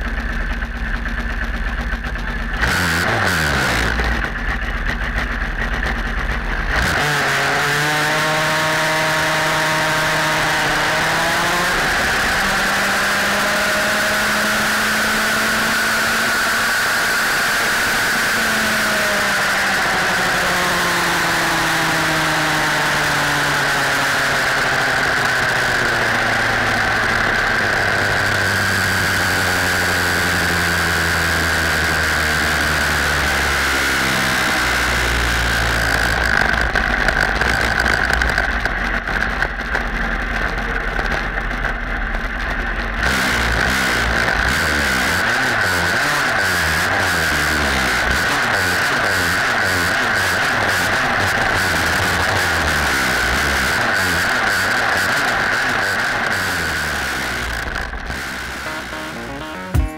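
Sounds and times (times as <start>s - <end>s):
single-cylinder engine running: 0.0s - 59.9s
steady high whine: 56.1s - 59.9s.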